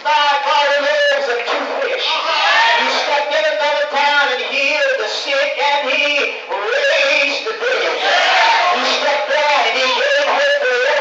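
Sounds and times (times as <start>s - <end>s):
man preaching through microphone: 0.0s - 11.0s.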